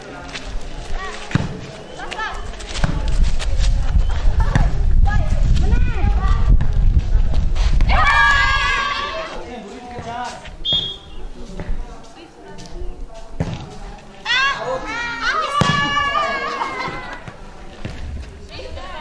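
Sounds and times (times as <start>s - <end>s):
girls calling and shouting: 0.8s - 2.8s, 4.0s - 6.8s, 7.8s - 9.5s, 14.1s - 17.6s, 18.4s - 19.0s
volleyball being struck: 15.6s - 16.0s.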